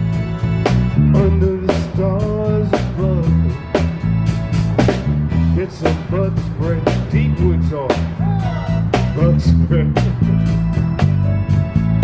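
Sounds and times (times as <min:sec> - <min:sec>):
bending electric guitar notes: 0:00.0 - 0:12.0
drums steady beat: 0:00.0 - 0:12.0
electric bass line: 0:00.0 - 0:12.0.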